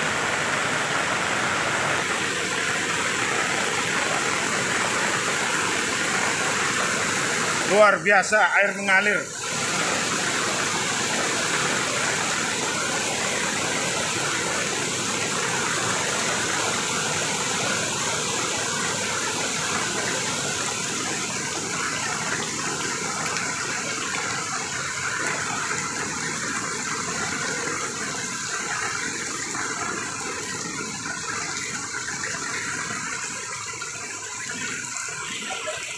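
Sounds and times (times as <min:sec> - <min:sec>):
floodwater rushing across road: 0:00.0 - 0:35.9.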